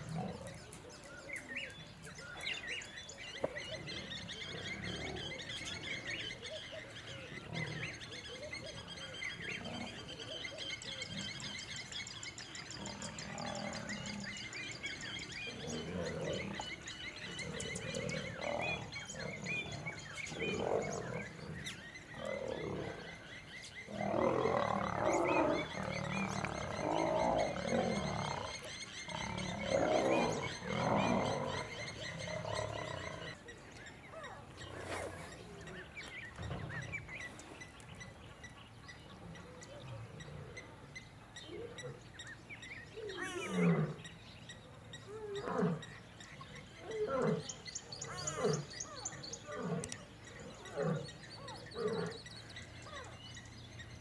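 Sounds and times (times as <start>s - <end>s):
birds chirping: 0.0s - 54.0s
lions growling and snarling: 3.6s - 6.2s, 15.4s - 33.4s, 46.8s - 53.0s.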